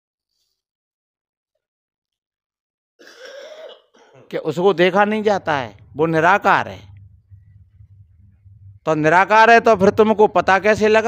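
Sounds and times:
man coughing: 3.0s - 4.4s.

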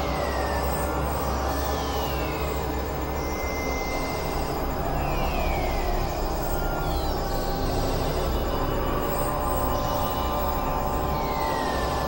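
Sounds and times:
dense electronic noise music: 3.7s - 12.0s.

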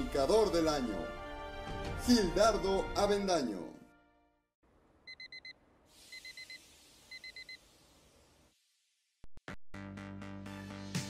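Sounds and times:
alarm clock beeping: 5.1s - 7.6s.

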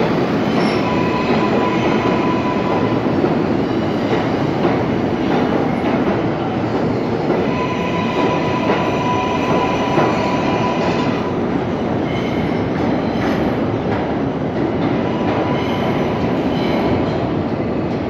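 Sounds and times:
subway train rumbling: 0.0s - 18.0s
wheels clacking on rail: 0.0s - 18.0s.

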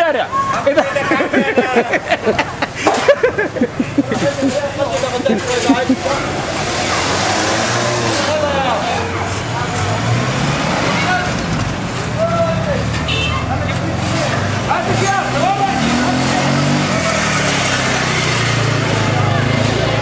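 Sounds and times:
crowd talking and calling out: 0.0s - 20.0s.

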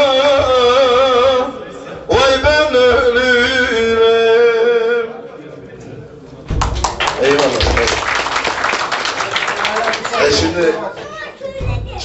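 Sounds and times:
man singing folk song: 0.0s - 5.1s.

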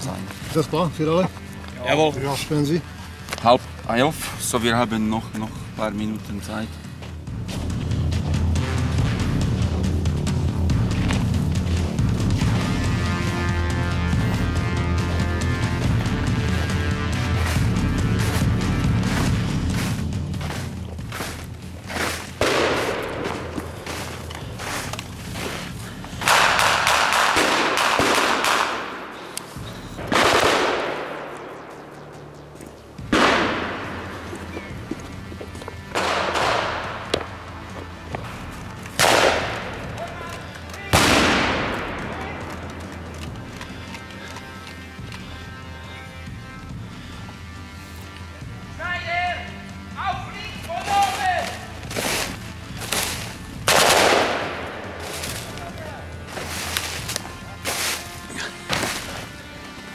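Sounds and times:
blank gunfire echoing: 22.4s - 23.6s, 26.2s - 29.2s, 30.0s - 31.7s, 33.1s - 34.3s, 35.9s - 37.0s, 39.0s - 39.9s, 40.9s - 42.7s, 53.7s - 55.5s.

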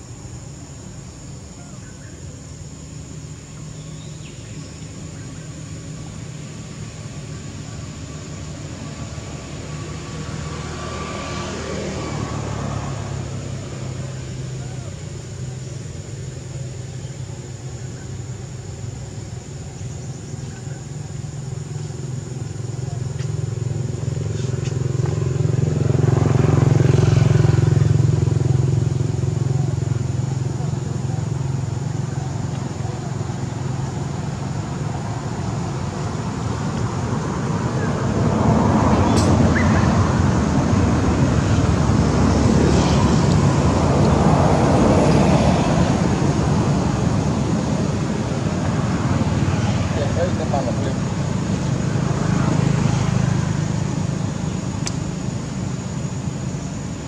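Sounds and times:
vehicles passing on road: 0.0s - 57.0s.

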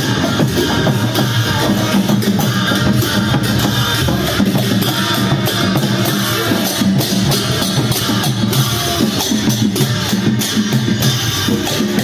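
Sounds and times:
group of drummers drumming: 0.0s - 12.0s.

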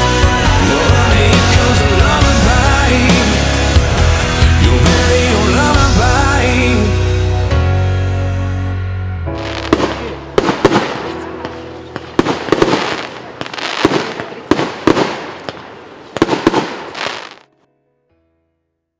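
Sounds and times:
music: 0.0s - 18.9s
fireworks bangs and crackles: 9.4s - 17.5s.

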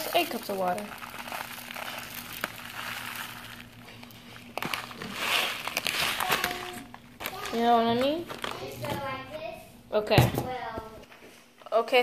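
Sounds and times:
rice pouring into plastic bowl: 0.0s - 6.6s
plastic bag crinkling: 0.0s - 9.0s.

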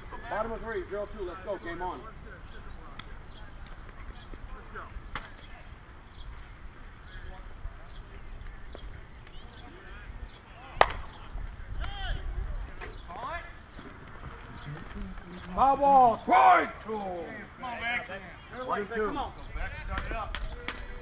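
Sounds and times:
faint chatter: 0.0s - 21.0s
voices shouting: 9.2s - 21.0s
bat hitting ball: 10.8s - 11.2s.

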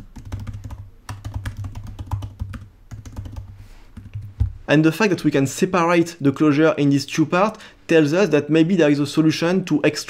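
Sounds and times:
computer keyboard typing: 0.0s - 4.3s.

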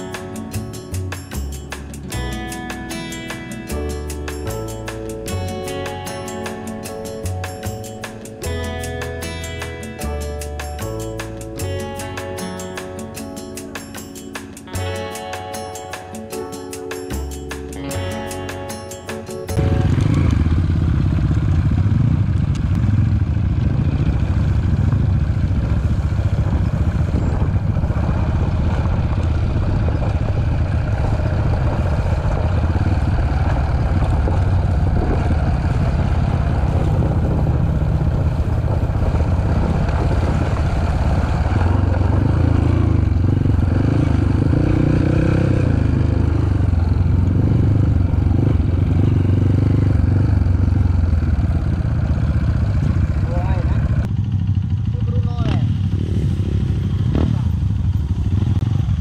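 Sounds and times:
dirt bike engine running: 0.0s - 59.0s.

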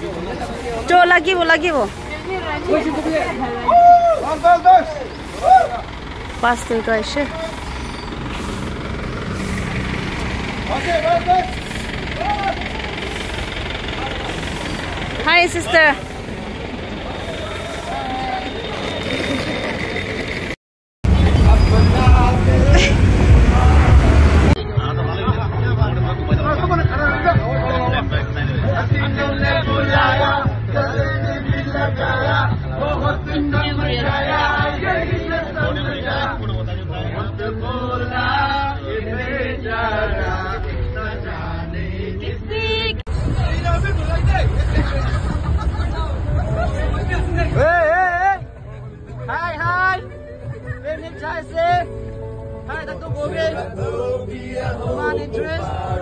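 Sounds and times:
men singing and chanting: 0.0s - 19.8s, 21.1s - 56.0s
bus engine humming: 0.0s - 56.0s
roadside traffic noise: 0.0s - 56.0s
scattered voices: 0.0s - 56.0s
faint voices: 10.5s - 20.3s.

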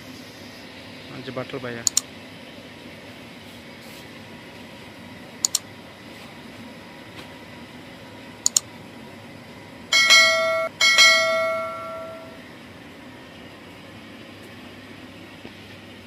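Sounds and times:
background hum: 3.9s - 16.0s
double mouse click: 5.4s - 5.6s, 8.4s - 8.6s
notification bell chimes: 10.0s - 12.4s.

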